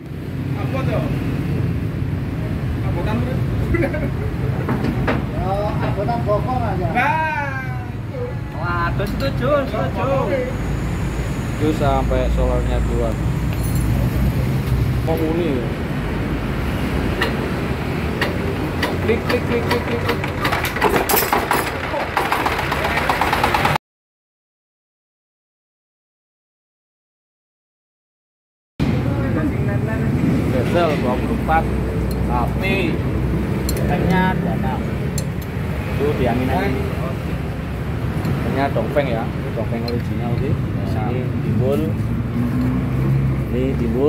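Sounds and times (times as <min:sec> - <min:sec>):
voices talking: 0:02.8 - 0:16.2
engine running: 0:13.4 - 0:23.8.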